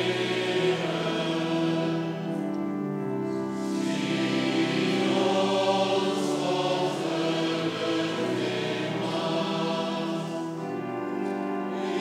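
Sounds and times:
congregation singing a psalm: 0.0s - 12.0s.

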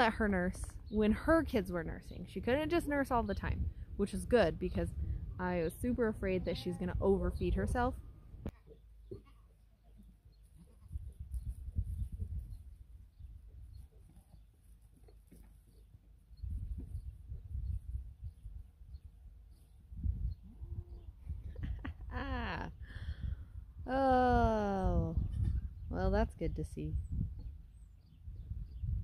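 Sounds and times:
wind rumbling on microphone: 0.0s - 8.5s, 10.8s - 13.8s, 16.3s - 29.0s.

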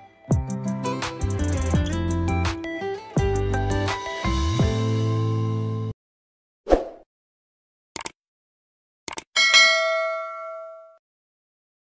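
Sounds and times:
quick clicks: 8.0s - 8.2s, 9.1s - 9.3s
bell ding: 9.4s - 11.0s.

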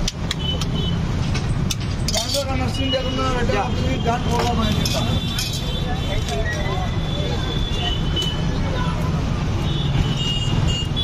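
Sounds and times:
low traffic rumble: 0.0s - 11.0s.

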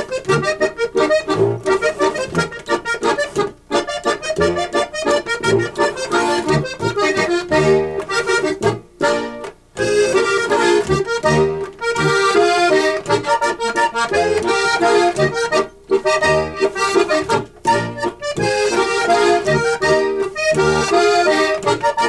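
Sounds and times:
button accordions playing a waltz: 0.0s - 22.0s.

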